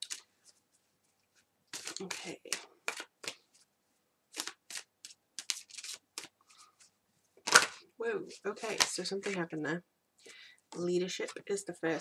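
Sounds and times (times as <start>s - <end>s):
cards being shuffled by hand: 0.0s - 3.7s, 4.3s - 9.5s.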